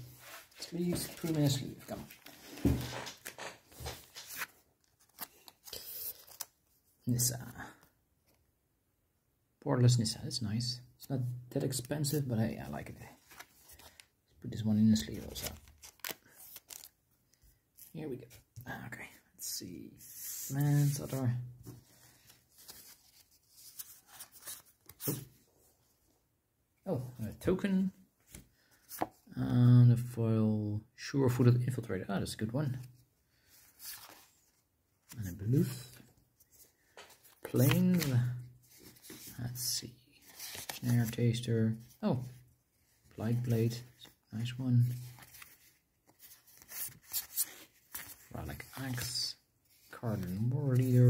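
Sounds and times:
cards and plastic crinkling: 0.5 - 6.5, 15.1 - 17.0.

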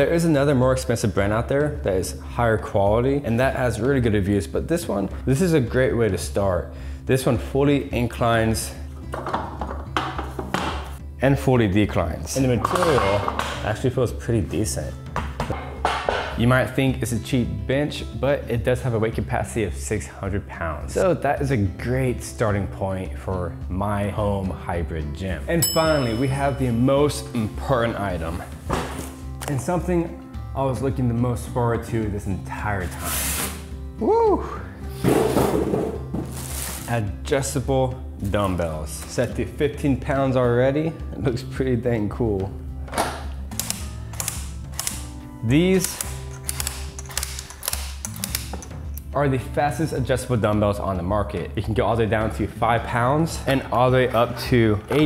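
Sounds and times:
quiet background music: 0.0 - 55.0
metallic clicks and clanks: 45.8 - 49.1.

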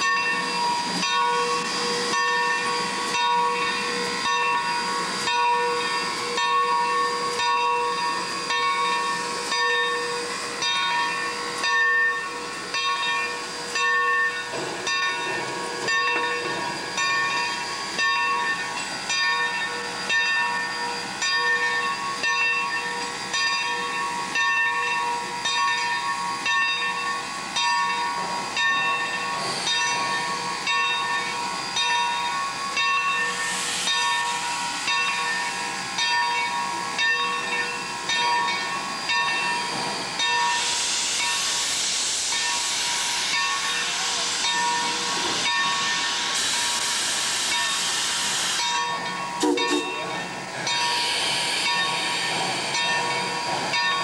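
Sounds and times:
regular locomotive beat: 0.0 - 54.0
steady high tones: 0.0 - 54.0
steam locomotive hissing: 0.0 - 54.0.

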